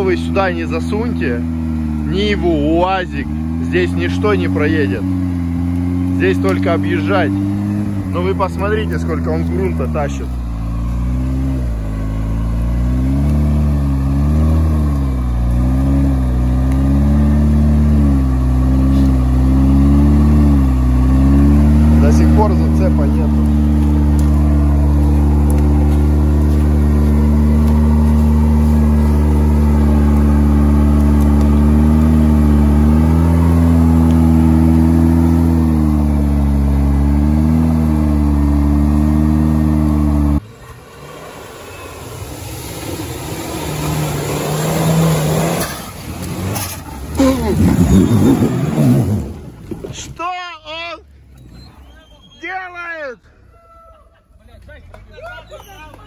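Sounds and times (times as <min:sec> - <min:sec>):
off-road vehicle engine labouring: 0:00.0 - 0:56.0.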